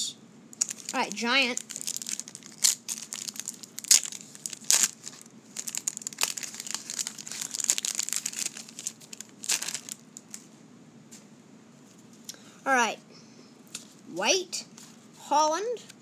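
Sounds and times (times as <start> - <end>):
wrapper crinkling and tearing: 0.6 - 10.5.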